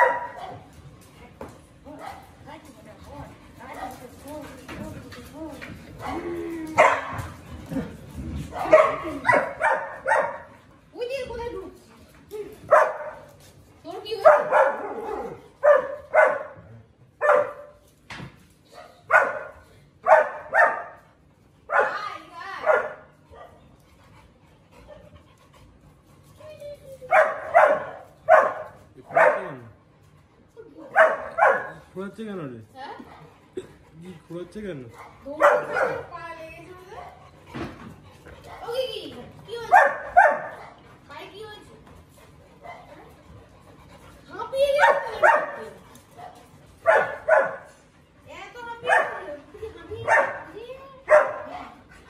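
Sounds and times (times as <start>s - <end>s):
large dog barking: 0.0s - 0.6s, 8.5s - 10.5s, 14.2s - 17.7s, 19.1s - 21.0s, 27.1s - 29.7s, 30.9s - 31.8s, 35.0s - 36.1s, 39.6s - 40.8s, 44.7s - 47.8s, 48.8s - 49.4s, 50.0s - 51.8s.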